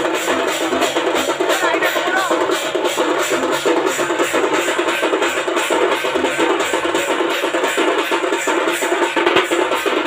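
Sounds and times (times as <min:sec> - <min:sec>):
cymbals: 0:00.0 - 0:10.0
drums beating fast: 0:00.0 - 0:10.0.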